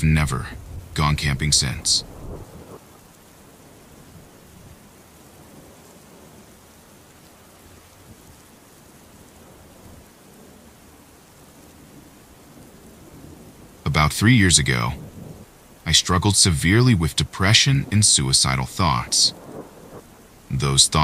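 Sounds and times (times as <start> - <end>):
rain falling: 0.0 - 21.0.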